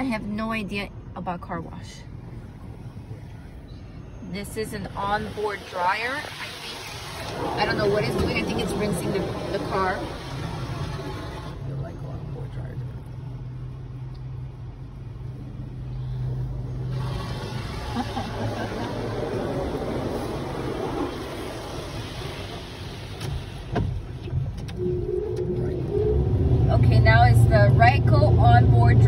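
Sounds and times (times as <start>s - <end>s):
car wash spray and blowers rushing: 4.6s - 11.9s, 15.5s - 29.0s.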